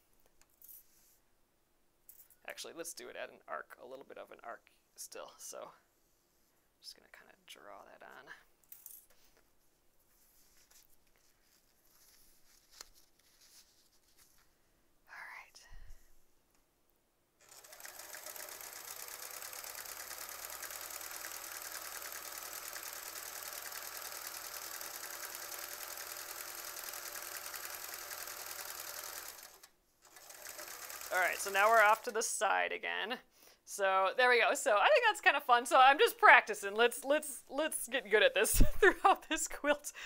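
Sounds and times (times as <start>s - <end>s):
sewing machine running: 17.4s - 32.2s.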